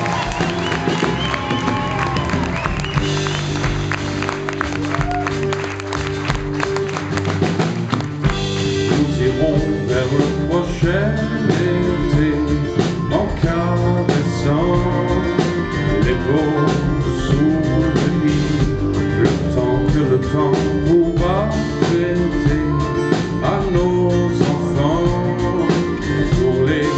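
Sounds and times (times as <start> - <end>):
acoustic guitars: 0.0 - 26.9
drum kit: 0.0 - 26.9
upright double bass: 0.0 - 26.9
accordion: 5.6 - 26.9.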